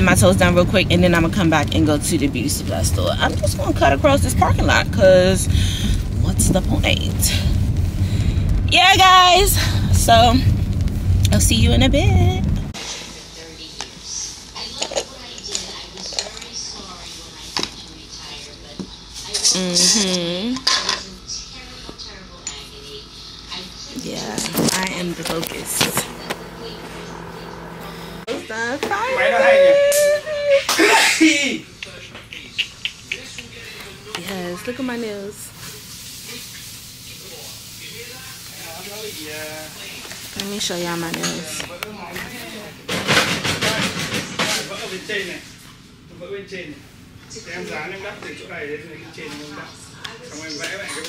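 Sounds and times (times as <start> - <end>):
faint voices: 11.3 - 44.8.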